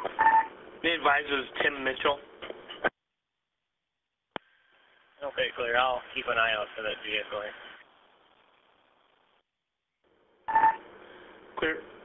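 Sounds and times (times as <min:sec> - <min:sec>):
radio static: 0:04.4 - 0:09.4
radio beep: 0:10.5 - 0:10.9.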